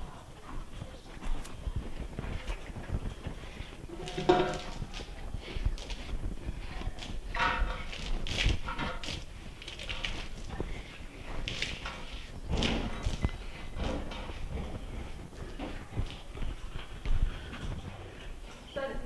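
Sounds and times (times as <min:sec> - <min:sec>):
horse hooves clopping: 0:00.0 - 0:19.0.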